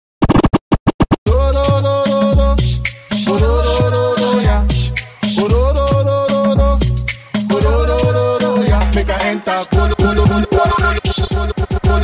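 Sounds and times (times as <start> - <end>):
chopped stutter bursts: 0.2 - 1.4
electronic music with bass line: 0.2 - 12.0.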